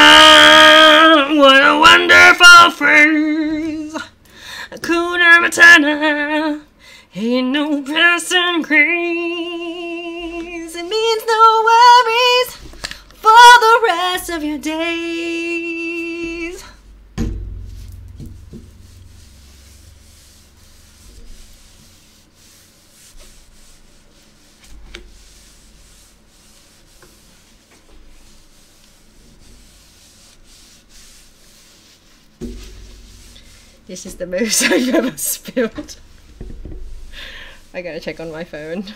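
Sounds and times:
rubbing and wiping on desk: 9.8s - 38.9s
sudden thump: 16.8s - 21.7s, 32.4s - 33.7s, 36.3s - 37.2s.

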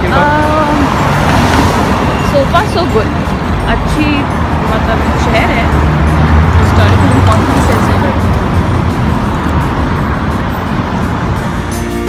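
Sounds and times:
cars passing: 0.0s - 12.0s
music: 2.1s - 12.0s.

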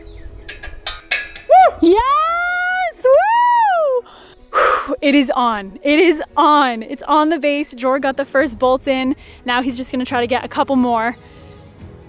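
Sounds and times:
woman cheering whoop: 1.5s - 4.1s
short breathy gasp: 4.1s - 5.0s.

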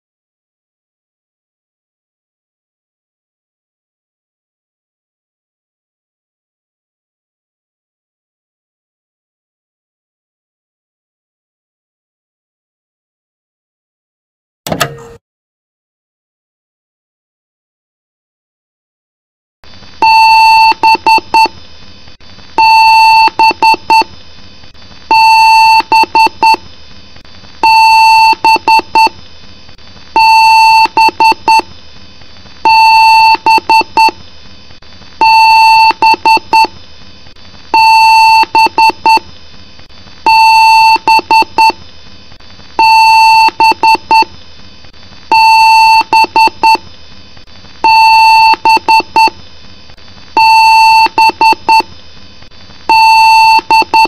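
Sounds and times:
steady background hum: 19.7s - 54.0s
motherboard speaker beeps: 45.3s - 46.8s, 47.9s - 49.3s, 50.4s - 51.8s, 52.9s - 54.0s.

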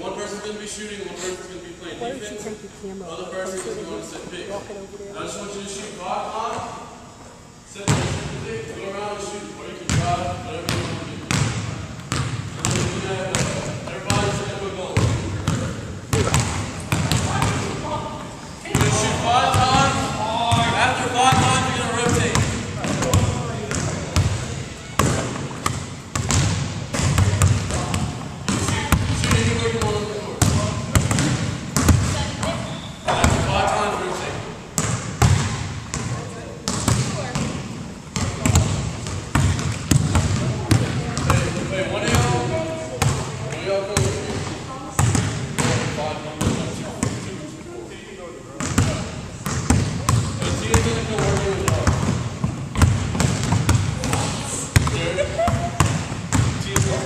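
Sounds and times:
people talking: 0.0s - 6.8s, 12.7s - 25.4s, 36.1s - 37.6s, 40.2s - 49.2s, 50.0s - 52.2s, 54.0s - 55.8s, 56.5s - 57.0s
basketballs bouncing on wooden floor: 9.9s - 17.8s, 18.7s - 33.5s, 34.8s - 47.3s, 48.6s - 57.0s.

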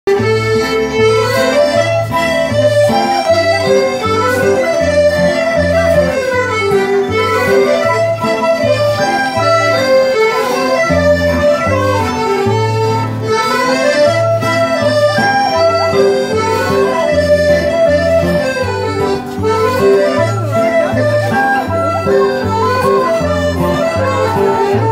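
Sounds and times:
folk band playing dance tune: 0.1s - 24.9s.

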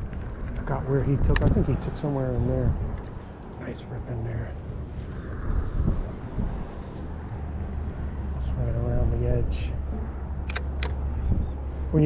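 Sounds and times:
wind rumble on microphone: 0.0s - 12.0s
sharp clicks: 10.4s - 11.0s.

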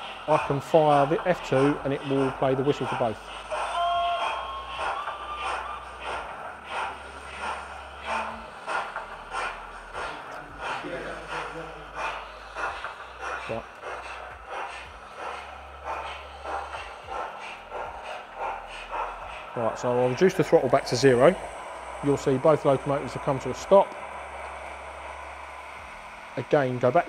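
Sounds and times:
steam locomotive whistles: 0.0s - 12.3s, 18.6s - 27.0s
steam exhaust chuffs: 0.0s - 27.0s.

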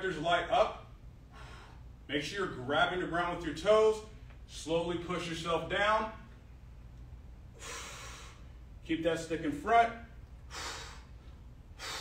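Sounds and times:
low room hum: 0.0s - 12.0s
man breathing under effort: 10.5s - 12.0s.

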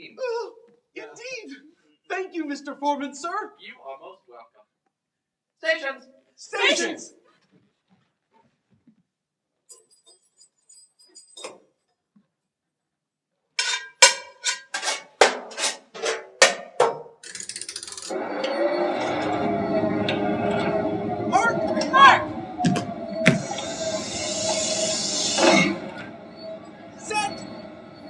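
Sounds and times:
faint clinks: 9.6s - 12.0s
machinery clattering and humming: 17.3s - 28.0s.

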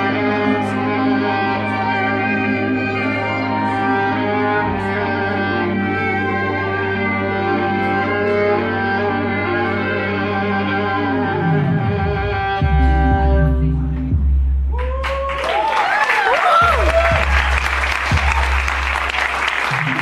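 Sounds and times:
violin sustained notes: 0.0s - 14.7s
low musical backing: 0.0s - 15.0s.

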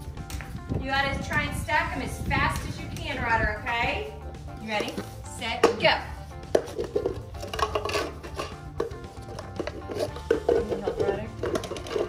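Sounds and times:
background music: 0.0s - 12.0s
plastic cups clacking on concrete: 4.6s - 12.0s.

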